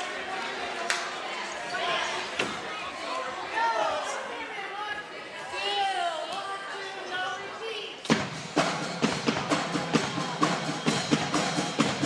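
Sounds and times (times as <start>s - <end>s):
bass and snare drum beat: 8.1s - 12.0s.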